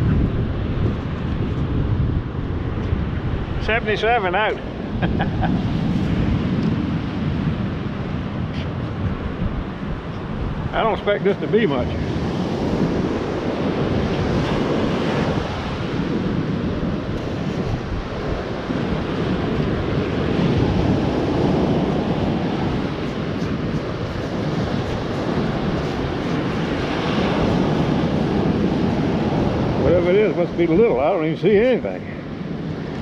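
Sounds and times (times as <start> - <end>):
surf washing up beach: 0.0 - 33.0
wind buffeting microphone: 0.0 - 33.0.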